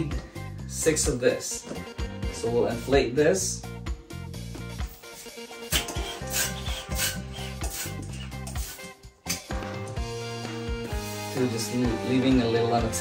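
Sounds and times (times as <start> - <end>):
background music: 0.0 - 13.0
balloon pump rush of air: 4.9 - 9.7, 10.7 - 11.5.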